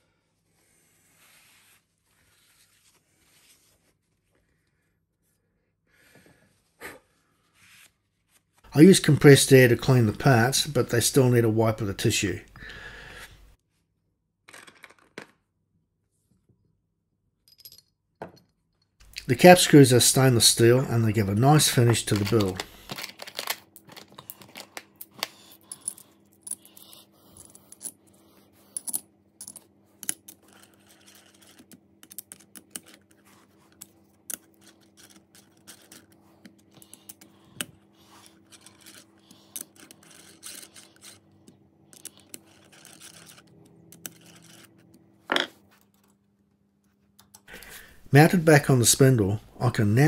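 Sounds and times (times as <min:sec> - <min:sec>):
faint steady hum: 0:08.7 - 0:13.6.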